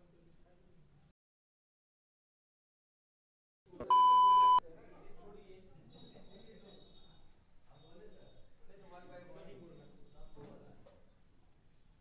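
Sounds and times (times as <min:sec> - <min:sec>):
electronic beep: 0:03.9 - 0:04.6.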